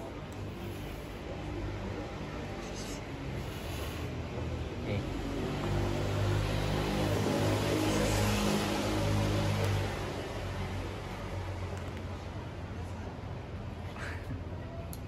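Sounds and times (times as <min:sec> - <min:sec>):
vehicle passing by: 0:00.6 - 0:11.6.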